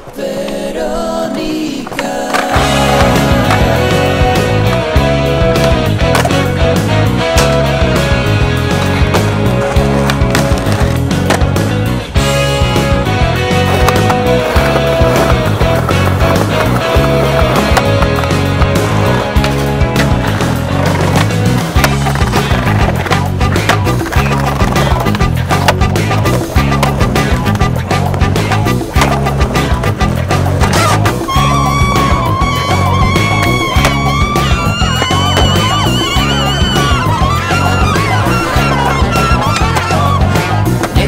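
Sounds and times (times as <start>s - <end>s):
skateboard wheels rolling on concrete: 0.0s - 41.0s
skateboards clacking: 1.8s - 41.0s
music with steady bass line: 2.6s - 41.0s.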